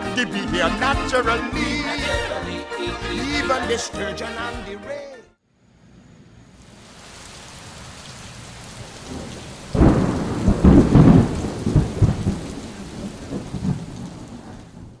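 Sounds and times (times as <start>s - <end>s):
rain hiss: 5.7s - 15.0s
thunder crack and rumble: 8.8s - 15.0s.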